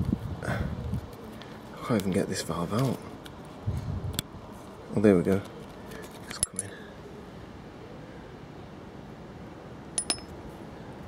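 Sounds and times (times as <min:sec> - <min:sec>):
metal valve clinking on metal: 0:10.0 - 0:10.3.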